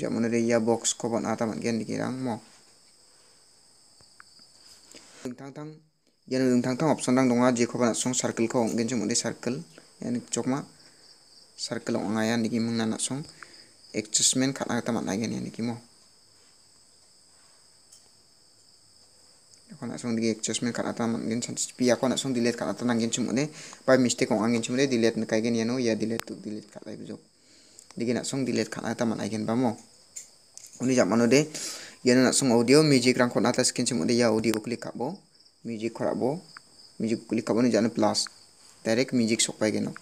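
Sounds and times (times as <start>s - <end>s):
man speaking: 0.0s - 2.6s, 5.2s - 10.8s, 11.6s - 15.9s, 19.7s - 27.3s, 28.0s - 29.9s, 30.6s - 40.0s
crickets chirring: 0.0s - 40.0s
high-pitched insect trill: 0.0s - 40.0s.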